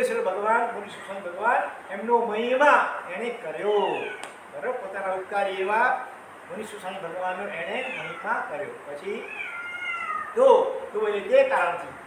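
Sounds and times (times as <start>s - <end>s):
cat meowing: 3.7s - 4.4s, 7.5s - 10.4s.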